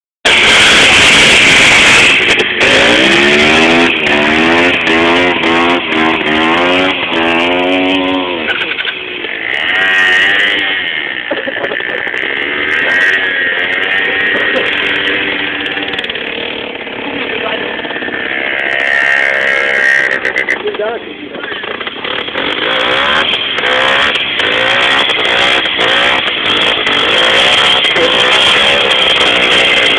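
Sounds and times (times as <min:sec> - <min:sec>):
loud rushing noise: 0:00.3 - 0:08.6
small motorcycle engine revving: 0:00.3 - 0:29.9.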